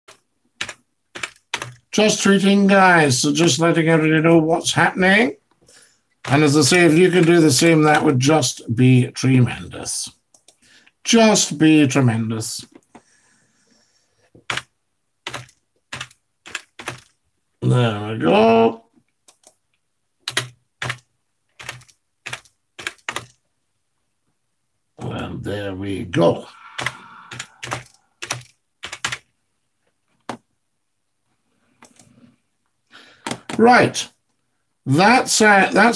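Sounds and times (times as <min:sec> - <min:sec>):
typing on computer keyboard: 0:00.1 - 0:01.9, 0:14.4 - 0:17.2, 0:19.2 - 0:19.6, 0:20.2 - 0:23.4, 0:26.8 - 0:29.3.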